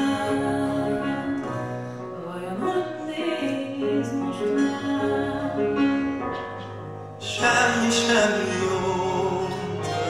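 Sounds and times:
violin: 0:00.0 - 0:10.0
keyboard held notes: 0:04.7 - 0:10.0.

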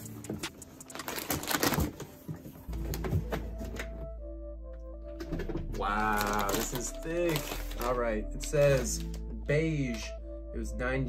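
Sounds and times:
plastic mailer bag crinkling: 0:00.9 - 0:02.2, 0:05.9 - 0:09.2
background music with bass: 0:02.7 - 0:11.0.

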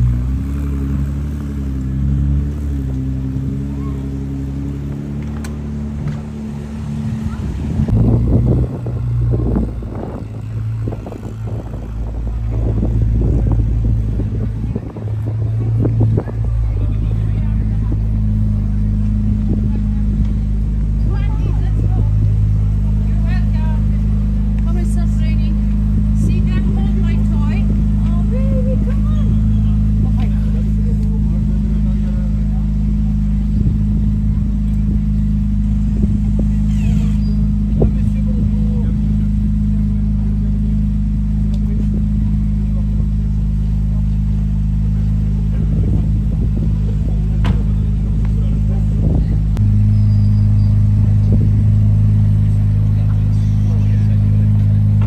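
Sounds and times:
car engine idling: 0:00.0 - 0:55.0
people talking: 0:03.6 - 0:04.4, 0:06.9 - 0:55.0.

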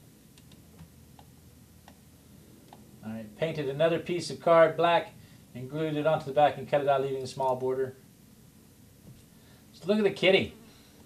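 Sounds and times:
low room hiss: 0:00.0 - 0:11.0.

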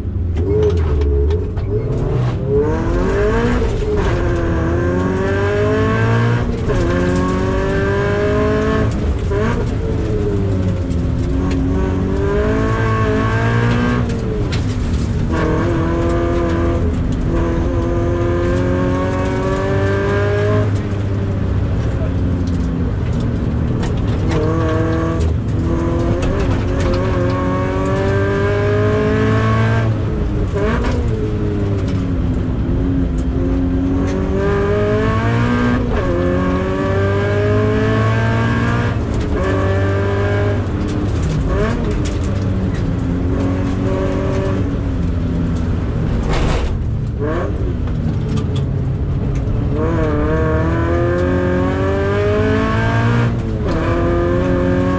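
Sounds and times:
car engine revving through gears: 0:00.0 - 0:54.9.

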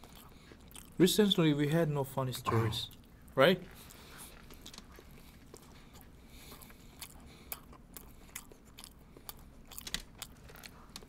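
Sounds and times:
chewing sandwiches: 0:00.0 - 0:01.5, 0:02.6 - 0:11.0.

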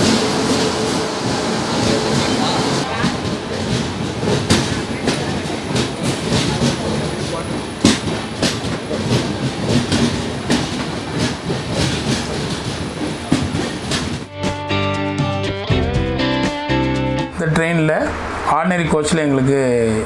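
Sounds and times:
train rumbling past: 0:00.0 - 0:14.3, 0:17.4 - 0:20.0
wheels clicking over rail joints: 0:01.8 - 0:14.3.

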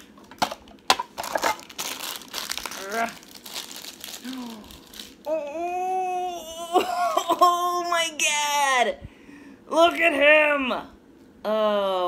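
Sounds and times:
plastic wrapping crinkling: 0:00.2 - 0:05.4
person humming: 0:04.2 - 0:07.9.

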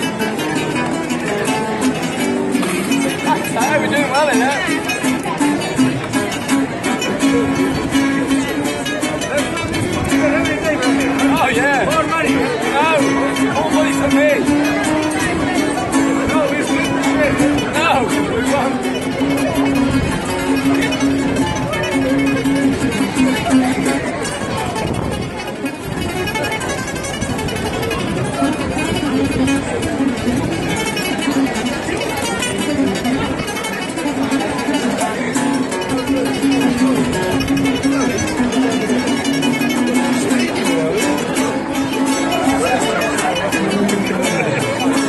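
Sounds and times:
acoustic guitars playing fast tune: 0:00.0 - 0:45.0.

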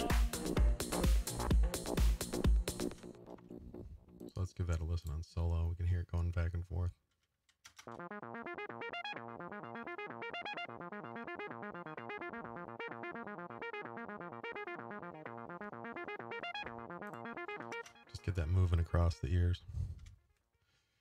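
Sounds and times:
synthesizer arpeggio: 0:07.9 - 0:19.2.

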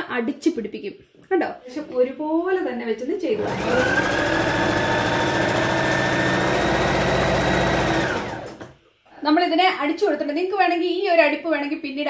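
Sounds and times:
sewing machine running: 0:03.4 - 0:08.8.

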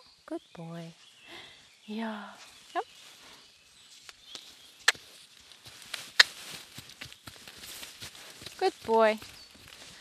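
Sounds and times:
sharp clicks: 0:04.3 - 0:05.0
horse hooves trotting on sand: 0:04.4 - 0:10.0.

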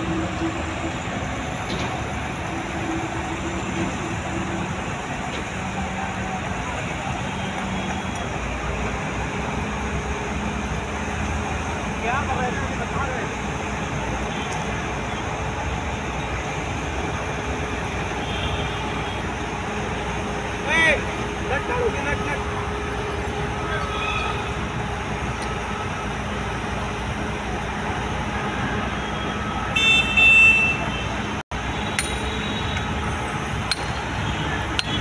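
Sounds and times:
road traffic rumble: 0:00.0 - 0:35.0
high-pitched horn toot: 0:28.8 - 0:31.2.

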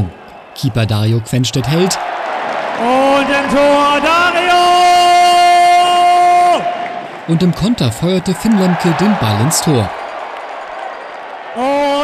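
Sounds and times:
crowd noise: 0:00.0 - 0:12.0
man shouting in celebration: 0:02.8 - 0:06.8, 0:11.6 - 0:12.0.

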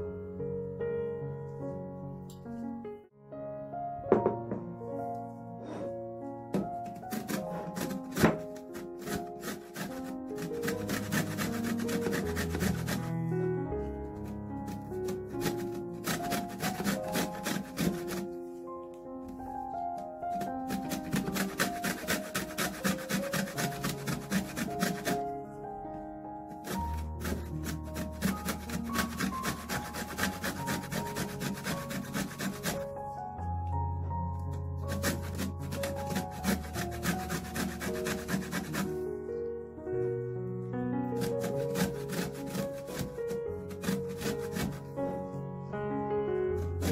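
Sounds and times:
background music: 0:00.0 - 0:46.9
lemon rasping on metal grater: 0:06.8 - 0:13.1, 0:14.2 - 0:18.3, 0:20.3 - 0:25.2, 0:26.6 - 0:32.8, 0:34.9 - 0:38.9, 0:41.2 - 0:44.9.

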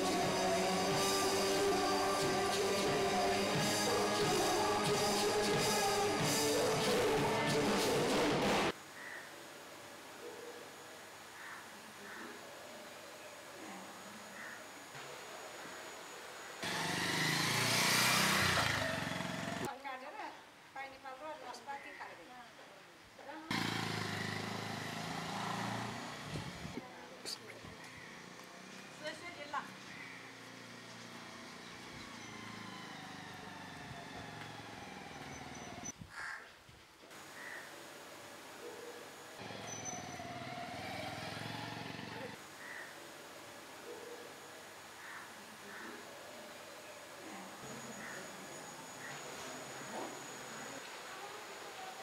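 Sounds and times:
loud motorcycle engine: 0:16.6 - 0:19.7, 0:23.5 - 0:26.8, 0:28.1 - 0:35.9, 0:39.4 - 0:42.4
vehicle engine running: 0:16.6 - 0:19.7.

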